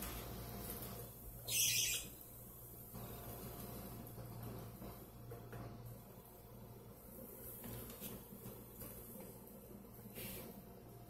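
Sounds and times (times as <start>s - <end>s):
faint steady hum: 0.0s - 11.0s
budgerigar chirp: 1.5s - 2.1s.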